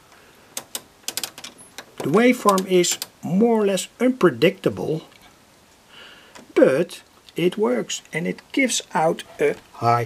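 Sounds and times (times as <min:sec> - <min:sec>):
sharp irregular clicks: 0:00.5 - 0:03.2.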